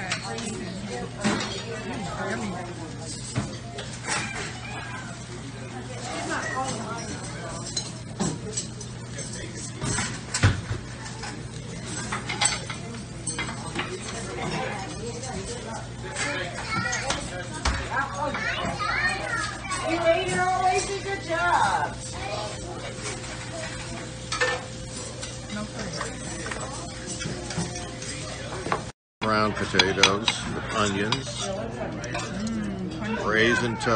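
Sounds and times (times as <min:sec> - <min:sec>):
hum of kitchen equipment: 0:00.0 - 0:33.9
utensils and plates clinking: 0:00.0 - 0:33.9
food sizzling on a griddle: 0:12.9 - 0:28.6.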